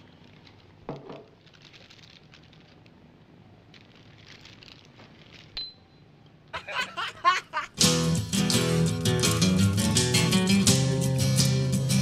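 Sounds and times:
paper wrapper crinkling: 0.0 - 5.6.

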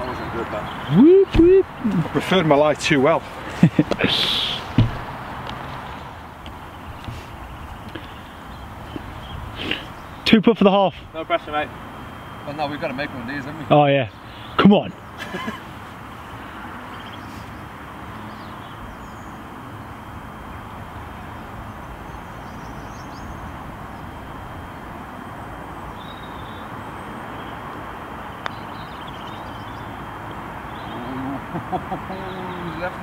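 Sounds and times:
outdoor background rush: 0.0 - 33.0
faint bird chirps: 13.4 - 15.1, 21.3 - 24.3, 25.2 - 27.7, 30.6 - 31.4.

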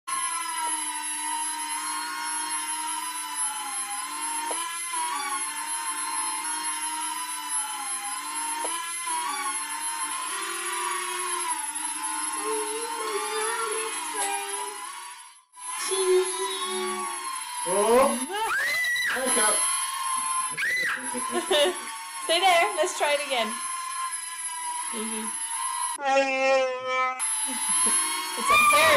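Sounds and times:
toy drone propellers whining: 0.1 - 28.9.

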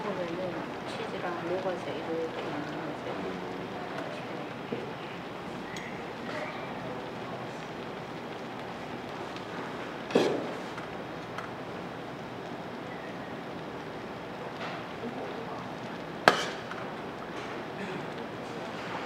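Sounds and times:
food bubbling in a pan: 0.0 - 19.0.

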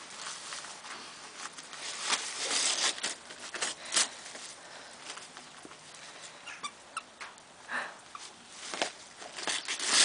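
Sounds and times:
dog tearing wrapping paper: 1.7 - 4.2, 8.7 - 10.0.

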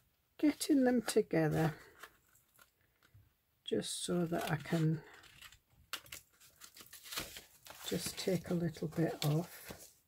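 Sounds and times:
paper rustling: 4.4 - 10.0.

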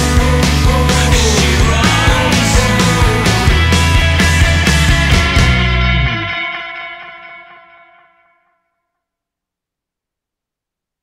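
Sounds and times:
distorted electric guitar chord: 0.0 - 8.4.

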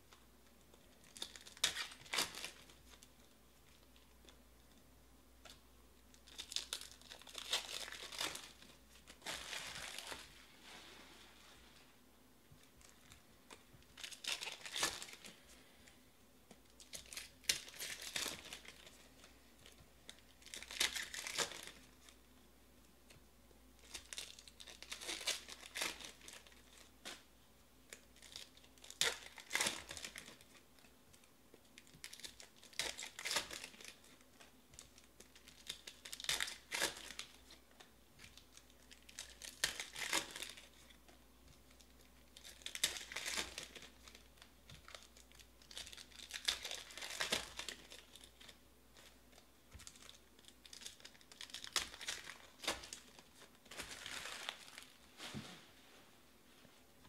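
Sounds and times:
foil wrappers tearing and crinkling: 1.0 - 3.0, 6.2 - 10.2, 14.0 - 15.4, 16.8 - 19.0, 20.1 - 21.9, 23.8 - 27.2, 27.9 - 30.6, 31.8 - 34.2, 34.8 - 37.6, 38.2 - 40.9, 42.3 - 55.0.

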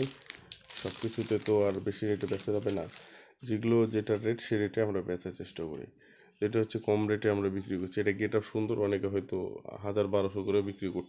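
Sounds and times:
man talking: 0.0 - 0.2, 0.8 - 11.0
plastic packaging crinkling: 0.0 - 3.2.

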